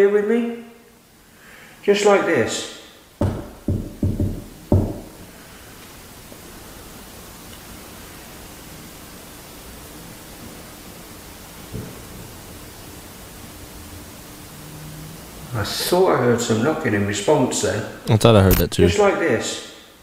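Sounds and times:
room hiss: 0.0s - 20.0s
man speaking: 18.1s - 19.2s.

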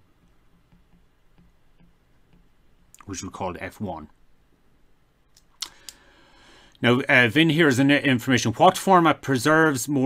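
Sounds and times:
man speaking: 3.0s - 4.2s, 6.8s - 10.0s
faint clicks: 5.3s - 6.0s.

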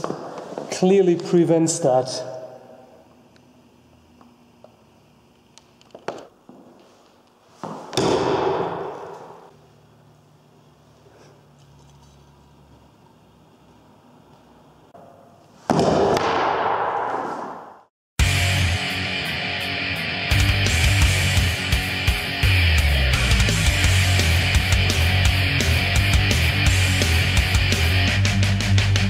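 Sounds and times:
sword striking wooden shield: 7.9s - 9.4s, 15.7s - 17.8s.

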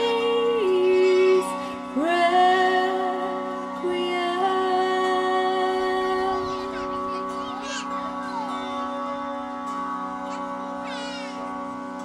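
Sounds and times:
harmonium drone: 0.0s - 12.0s
tanpura plucked strings: 0.0s - 12.0s.

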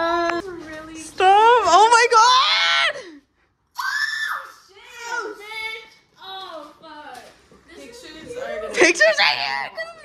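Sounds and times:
women squealing and exclaiming: 2.0s - 3.0s, 3.8s - 5.4s.

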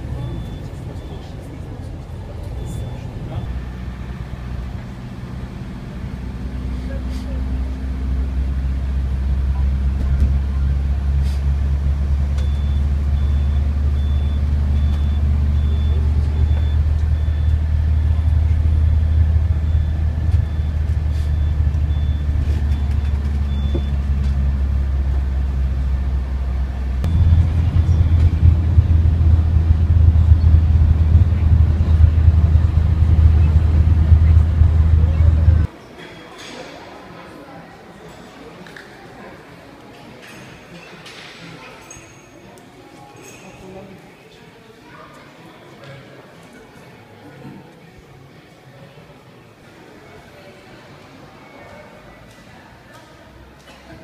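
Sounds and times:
coach engine and road noise: 0.0s - 35.8s
high electronic beep: 0.2s - 1.3s, 12.4s - 18.0s, 18.7s - 24.0s, 27.1s - 35.5s.

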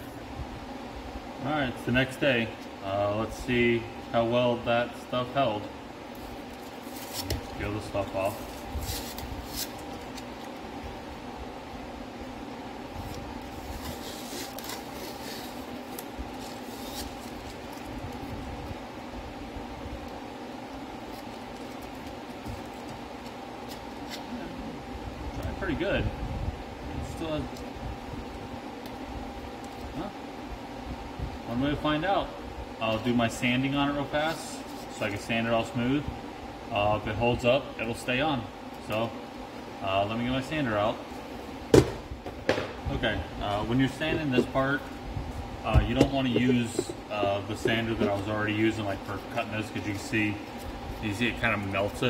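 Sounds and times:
steady low hum: 0.0s - 52.0s
masking tape peeling off plastic: 6.2s - 7.6s, 8.2s - 10.6s, 13.0s - 18.4s, 21.0s - 24.4s
man muttering: 46.2s - 48.2s.

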